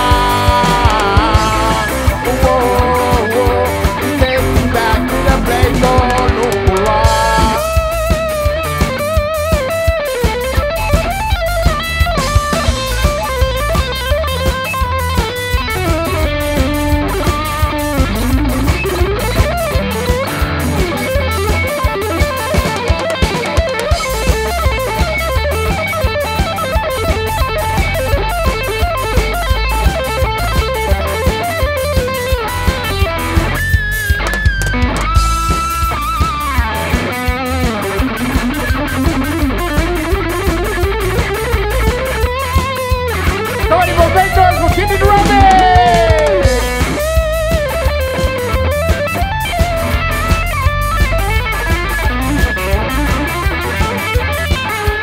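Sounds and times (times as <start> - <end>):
electric guitar lead line: 0.0 - 55.0
live reggae band instrumental: 0.0 - 55.0.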